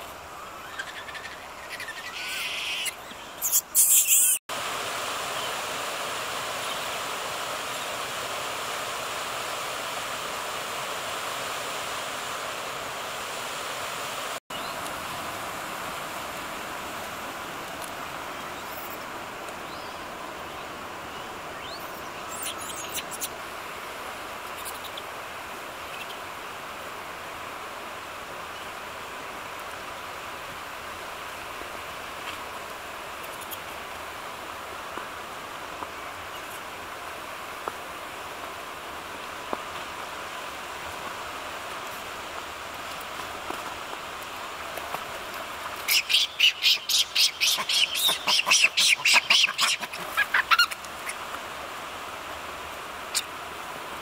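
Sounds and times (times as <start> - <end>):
running water: 0.0 - 54.0.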